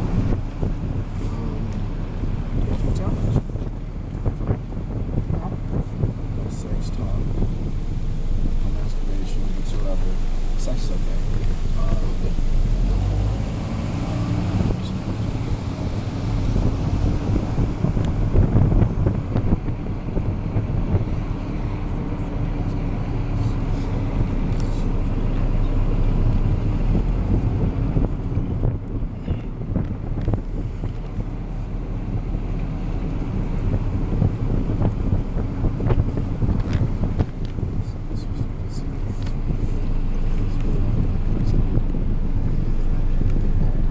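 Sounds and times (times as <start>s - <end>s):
wind buffeting microphone: 0.0s - 43.9s.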